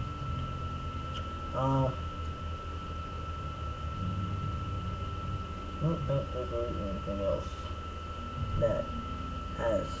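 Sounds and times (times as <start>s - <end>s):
faint high-pitched whine: 0.0s - 10.0s
low hum and hiss: 0.0s - 10.0s.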